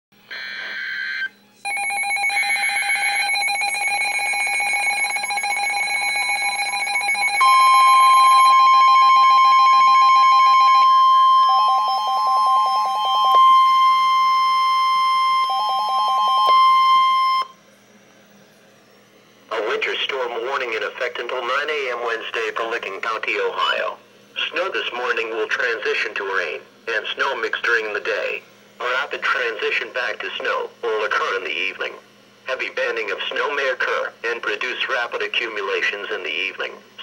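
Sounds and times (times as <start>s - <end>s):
electronic alarm beeps: 0.3s - 17.6s
rapid beeping: 1.7s - 17.5s
steady weather radio alert tone: 2.2s - 17.5s.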